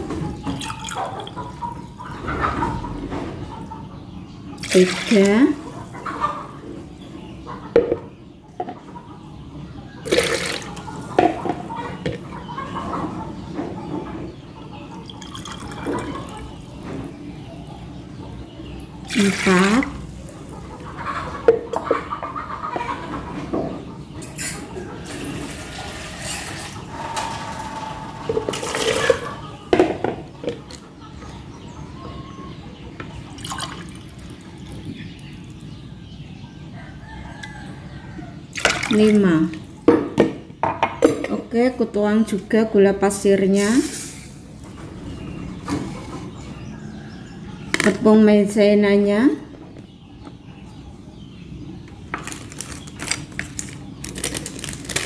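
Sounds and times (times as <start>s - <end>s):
liquid splashing and trickling: 33.4s - 34.9s.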